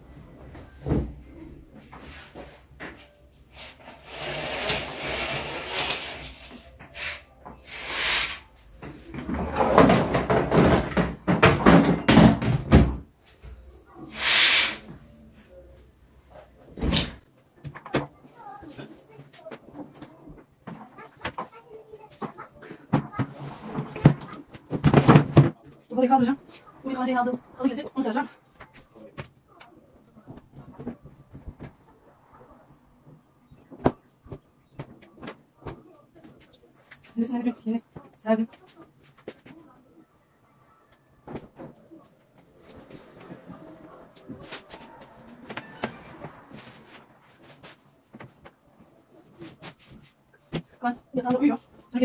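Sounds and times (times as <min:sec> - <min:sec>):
curtain swished along rail: 0:03.5 - 0:08.5, 0:14.1 - 0:14.8
cushions and bedding rustling: 0:41.4 - 0:52.0.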